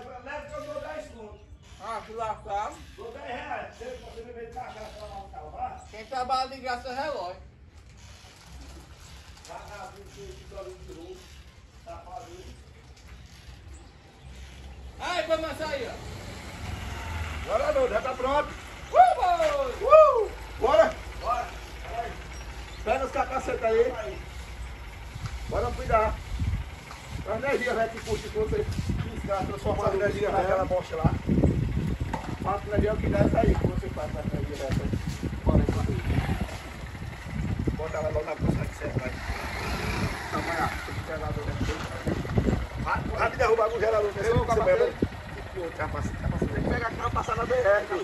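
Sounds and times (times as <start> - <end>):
motorcycle engine idling: 16.7 - 48.0
person giving high wordless calls: 18.9 - 20.7.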